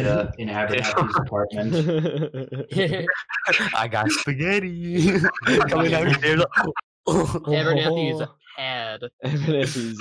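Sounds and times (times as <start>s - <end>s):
man making speech-like sounds: 0.0s - 10.0s.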